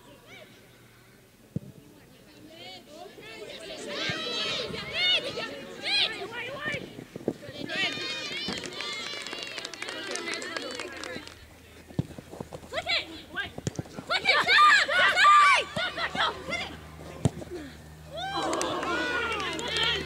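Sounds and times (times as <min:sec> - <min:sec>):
women shouting: 0:14.1 - 0:16.8, 0:18.1 - 0:20.0.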